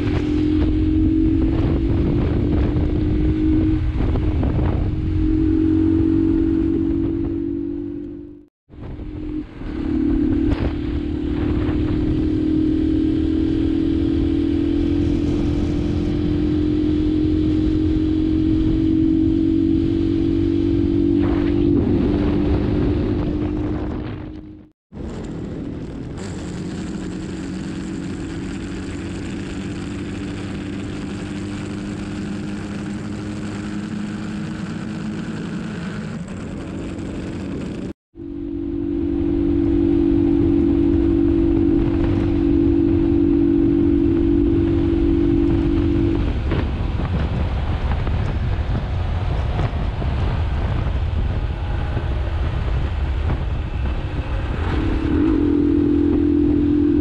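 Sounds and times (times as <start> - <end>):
motorcycle engine cruising: 0.0 - 57.0
road noise: 0.0 - 57.0
wind noise: 0.0 - 57.0.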